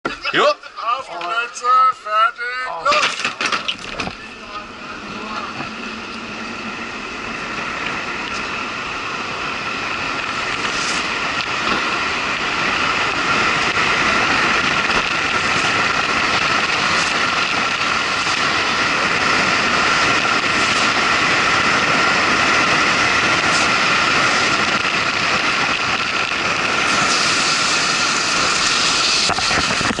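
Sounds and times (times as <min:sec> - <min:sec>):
wheels whirring on asphalt: 0:03.1 - 0:30.0.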